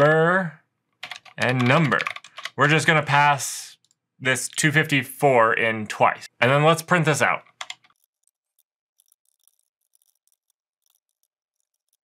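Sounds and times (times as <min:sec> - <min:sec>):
faint keyboard typing clicks: 0:01.0 - 0:02.8, 0:07.4 - 0:08.1.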